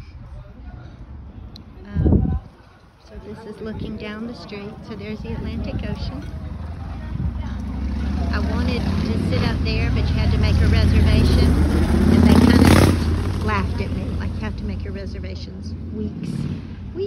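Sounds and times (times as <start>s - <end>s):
low traffic rumble: 0.0s - 17.0s
car driving past: 5.2s - 14.6s.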